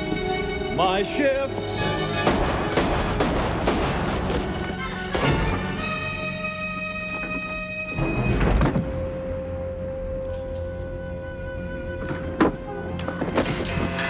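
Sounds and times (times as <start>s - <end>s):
film score music: 0.0s - 14.0s.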